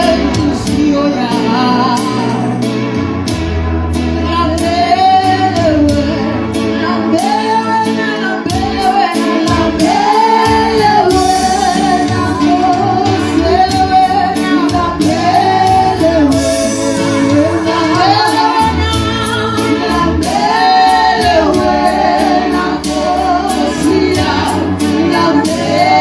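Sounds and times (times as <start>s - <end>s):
bass line: 0.0s - 26.0s
steady beat: 9.8s - 26.0s.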